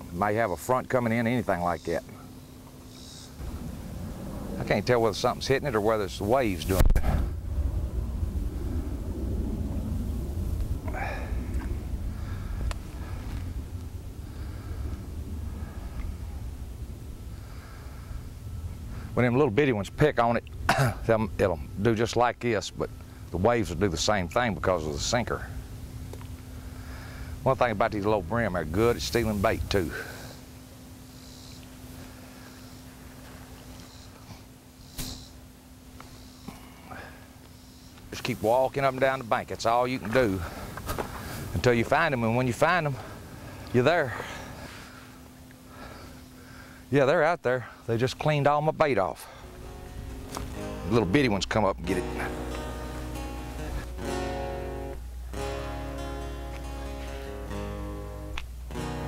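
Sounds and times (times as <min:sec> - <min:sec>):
faint low hum: 0:00.0 - 0:59.0
wind buffeting microphone: 0:03.4 - 0:30.2
low rumble: 0:03.4 - 0:30.6, 0:49.4 - 0:59.0.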